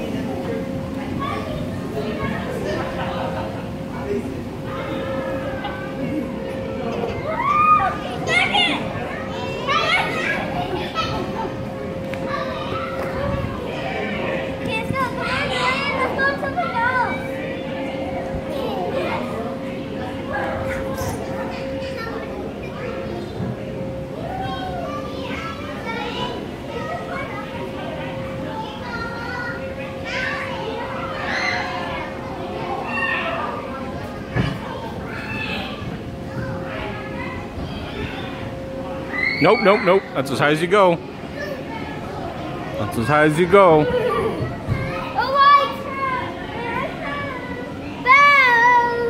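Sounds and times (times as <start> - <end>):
faint hum: 0.0 - 43.1
children calling and shouting: 0.0 - 49.0.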